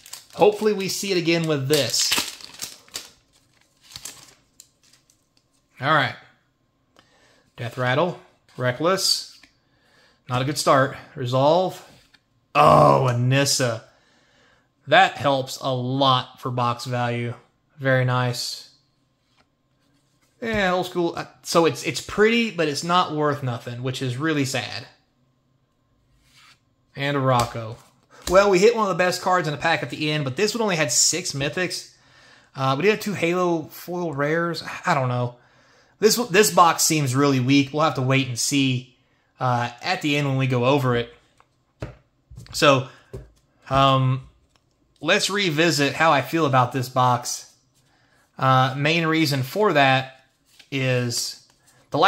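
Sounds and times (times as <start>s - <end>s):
foil wrapper crinkling: 0.0s - 5.5s
faint card rustle: 50.2s - 52.0s.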